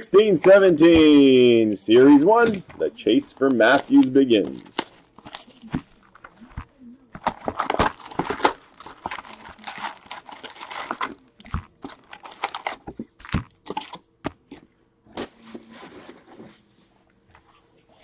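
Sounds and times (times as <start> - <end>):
foil packs rustling: 3.0 - 14.0
plastic shrink-wrap crinkling and tearing: 3.4 - 14.0.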